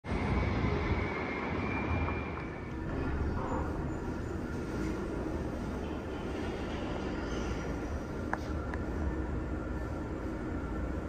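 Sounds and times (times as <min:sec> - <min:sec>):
low rumble of city street: 0:00.0 - 0:11.0.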